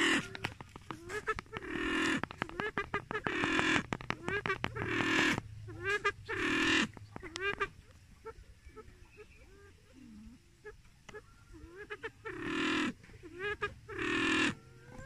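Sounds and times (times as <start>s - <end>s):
pheasant harsh squawks: 0.0s - 8.4s, 11.1s - 15.0s
pheasant clicking notes: 0.2s - 5.5s.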